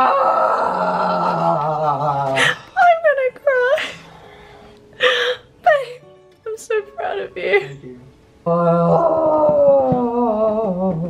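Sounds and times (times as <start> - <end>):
person wailing howl: 0.0 - 2.4, 8.5 - 11.0.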